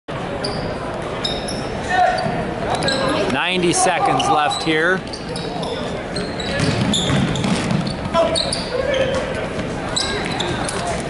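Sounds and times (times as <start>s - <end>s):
crowd chatter: 0.1s - 11.0s
sneaker squeaks: 0.4s - 11.0s.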